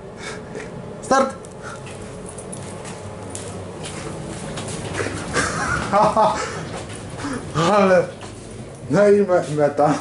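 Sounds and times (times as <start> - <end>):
footsteps on tiled floor: 1.7 - 8.6.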